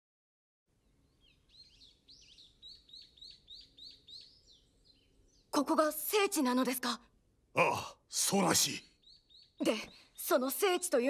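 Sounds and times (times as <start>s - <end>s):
songbirds chirping: 0.7s - 11.0s.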